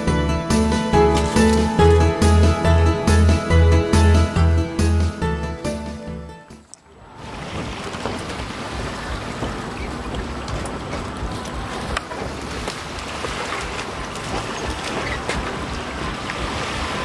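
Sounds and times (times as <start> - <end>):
water at the shore: 0.0 - 3.0, 6.5 - 17.0
background music: 0.0 - 6.7.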